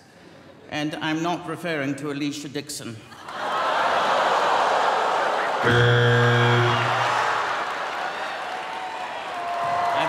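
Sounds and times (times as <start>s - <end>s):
audience laughing and applauding: 3.2s - 5.7s, 6.6s - 10.0s.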